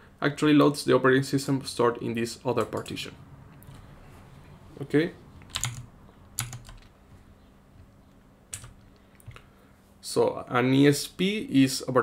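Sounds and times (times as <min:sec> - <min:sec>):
computer keyboard key clicks: 0:05.4 - 0:06.9, 0:08.5 - 0:09.4.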